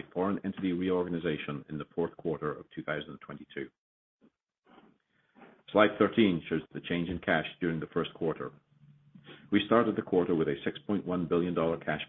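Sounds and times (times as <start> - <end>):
man speaking over telephone: 0.0 - 3.7, 9.5 - 12.0.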